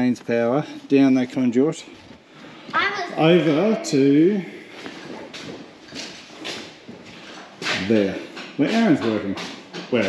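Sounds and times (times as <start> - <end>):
man speaking: 0.0 - 2.0, 3.0 - 4.9, 7.7 - 10.0.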